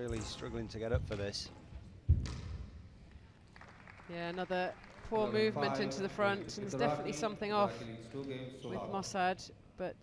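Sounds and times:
loud thump on squash court: 0:02.0 - 0:02.8.

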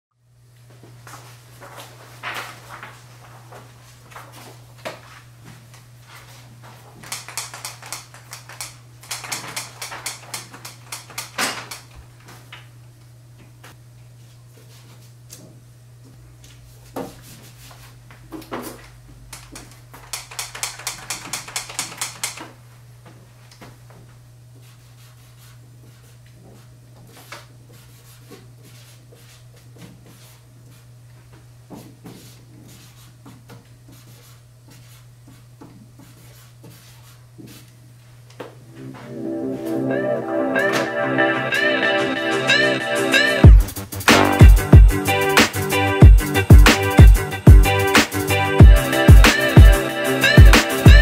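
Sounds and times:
rapid crackling clicks: 0:07.0 - 0:11.8, 0:19.3 - 0:22.4.

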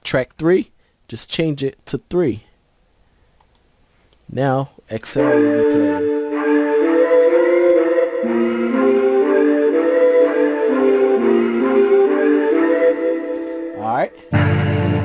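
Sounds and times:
sustained layered vocal chords: 0:05.2 - 0:15.0.

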